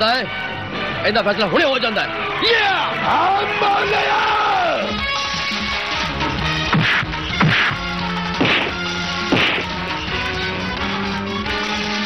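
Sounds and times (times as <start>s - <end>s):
background music: 0.0s - 12.0s
fight blow whacks: 6.7s - 9.8s.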